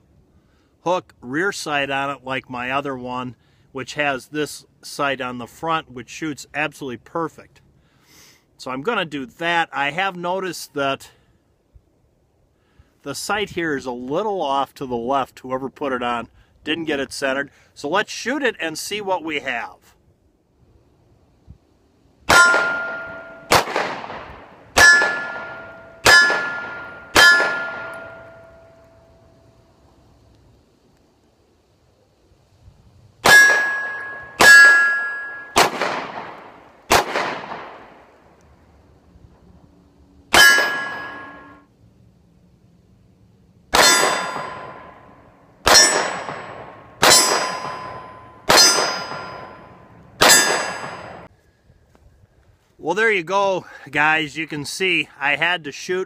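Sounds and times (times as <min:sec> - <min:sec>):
steel target ringing: 0:22.3 - 0:23.7, 0:24.7 - 0:29.5, 0:33.2 - 0:35.8, 0:40.3 - 0:41.7, 0:43.8 - 0:51.3
pistol shots: 0:22.3 - 0:28.7, 0:33.2 - 0:38.0, 0:40.3 - 0:41.6, 0:43.7 - 0:51.3.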